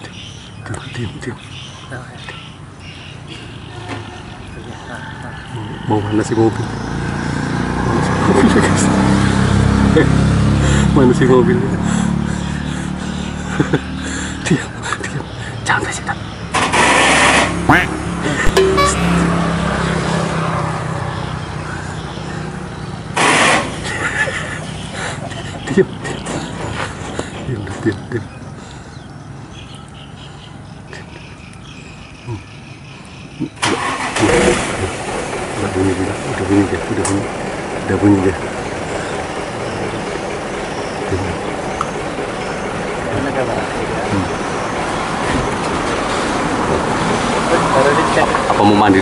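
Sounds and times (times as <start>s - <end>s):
vehicle engine: 5.7s - 29.4s, 33.6s - 49.0s.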